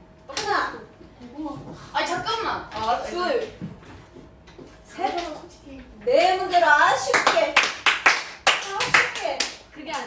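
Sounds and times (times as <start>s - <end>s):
people clapping: 7.0s - 10.0s.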